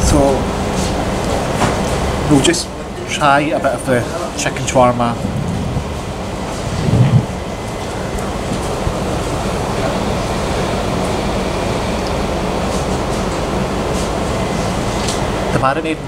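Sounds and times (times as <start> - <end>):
fan rushing noise: 0.0 - 16.0
brief low hum: 5.1 - 15.5.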